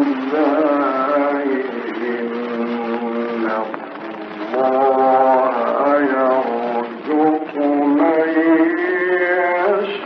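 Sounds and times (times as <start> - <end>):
man chanting melodic recitation: 0.0 - 10.0.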